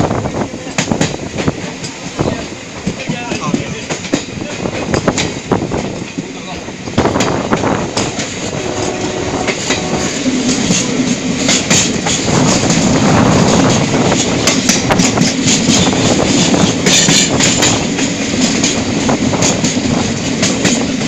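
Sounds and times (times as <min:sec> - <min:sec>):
clicks and rattles of train: 0:00.0 - 0:21.0
train wheels rumbling on rails: 0:00.0 - 0:21.0.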